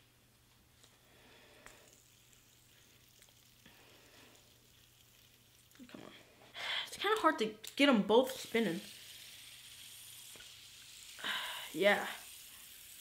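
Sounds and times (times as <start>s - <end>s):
fidget spinner whirring: 0.8s - 6.4s, 8.2s - 13.0s
hiss: 8.3s - 13.0s.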